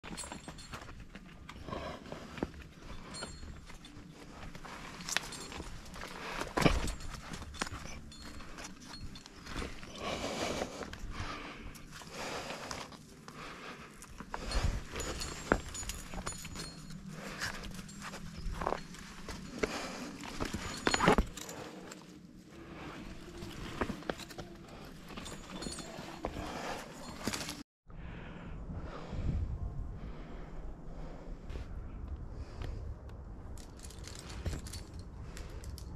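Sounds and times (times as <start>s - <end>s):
light clinks of gear: 0.0s - 27.6s, 32.0s - 35.9s.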